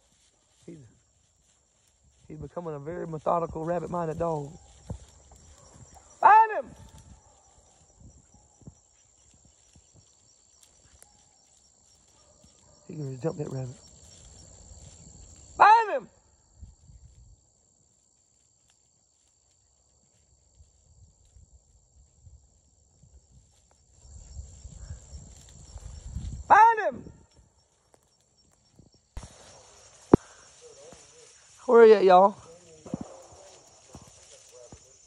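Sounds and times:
rustling through brush: 0.0s - 15.6s, 23.2s - 26.5s, 27.6s - 35.0s
dog barking: 5.5s - 8.7s, 10.8s - 11.5s, 12.1s - 13.0s.

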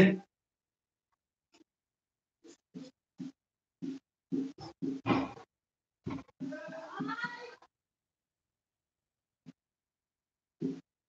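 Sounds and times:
marker pen writing on whiteboard: 2.4s - 5.4s, 6.1s - 7.6s, 10.6s - 10.9s.

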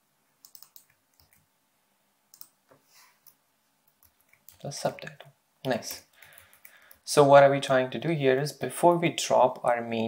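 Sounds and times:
keyboard and mouse clicks: 0.4s - 1.5s, 2.3s - 5.2s.

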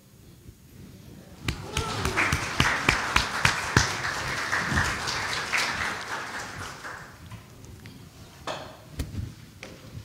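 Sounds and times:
congregation applauding: 1.4s - 7.5s.

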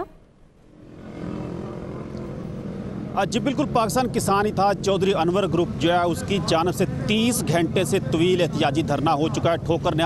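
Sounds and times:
road traffic engine hum: 0.0s - 10.0s.

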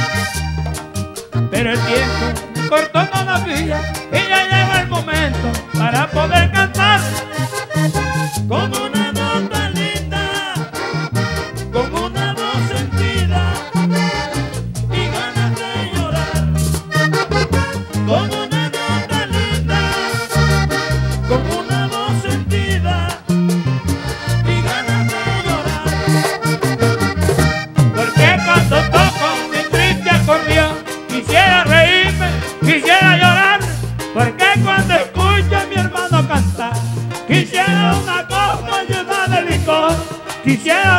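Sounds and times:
accordion melody: 0.0s - 40.9s
bass line: 0.0s - 40.9s
percussion rhythm: 0.0s - 40.9s.

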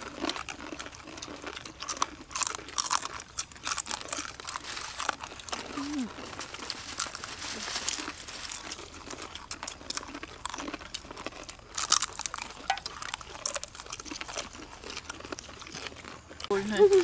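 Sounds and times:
people biting crunchy chips: 0.0s - 17.0s
hands rummaging crisp chips: 0.1s - 17.0s.

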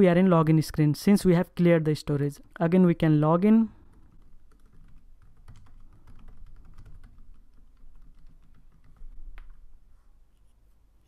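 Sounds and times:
typing on computer keyboard: 3.8s - 9.7s.

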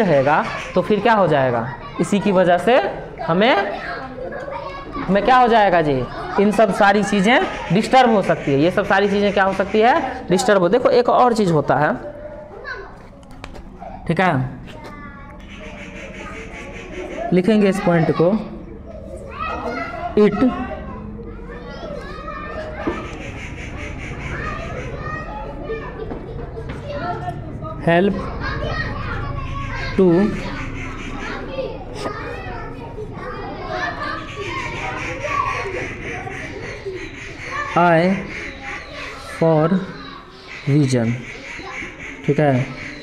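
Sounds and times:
faint children's voices: 0.0s - 43.0s.

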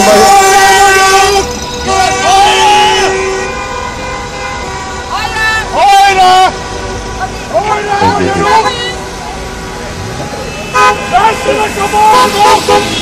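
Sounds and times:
people shouting: 0.0s - 3.2s, 5.1s - 6.6s, 7.3s - 9.0s
car horns honking: 0.0s - 13.0s.

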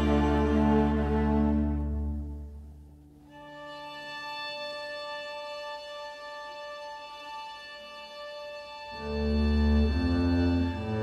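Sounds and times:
orchestra holding high chord: 0.0s - 2.4s.

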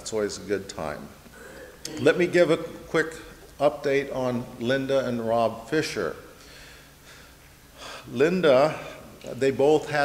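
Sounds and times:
man breathing in: 6.4s - 8.1s.

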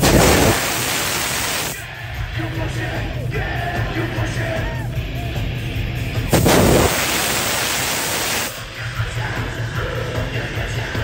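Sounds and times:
stage gas jet blast and hiss: 0.0s - 1.8s, 6.3s - 8.6s.

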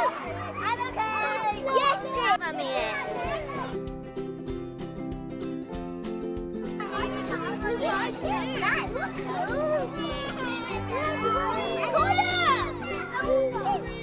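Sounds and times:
children shouting and chattering: 0.0s - 4.5s, 6.7s - 14.0s
background music with held notes: 0.0s - 14.0s.

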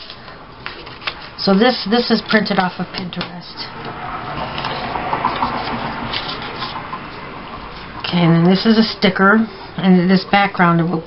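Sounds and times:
paper rustling and sliding: 0.0s - 2.8s, 4.4s - 7.9s.

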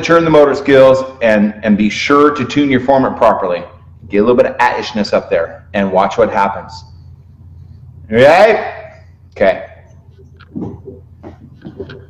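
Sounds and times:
people talking: 0.0s - 6.9s, 8.1s - 11.0s.

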